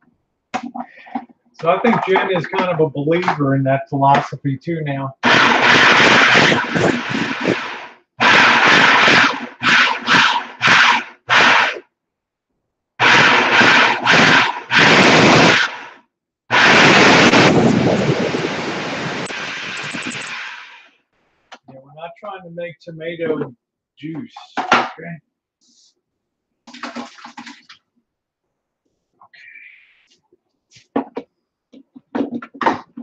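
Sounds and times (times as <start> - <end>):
food processor motor pulsing: 5.2 - 11.8, 13.0 - 18.0.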